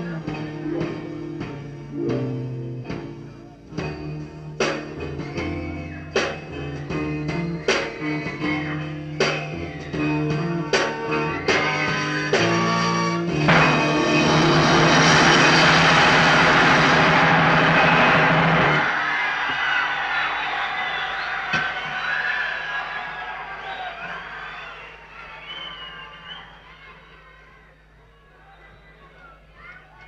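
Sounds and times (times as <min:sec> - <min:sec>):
audience cheering: 0:07.4 - 0:12.8, 0:13.5 - 0:30.0
live band sustained chord: 0:11.2 - 0:18.8.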